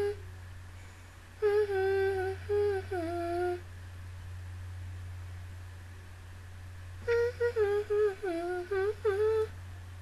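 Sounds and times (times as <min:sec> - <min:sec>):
woman humming: 0:00.0 - 0:00.2, 0:01.4 - 0:03.7, 0:07.0 - 0:09.6
low background hum: 0:00.0 - 0:10.0.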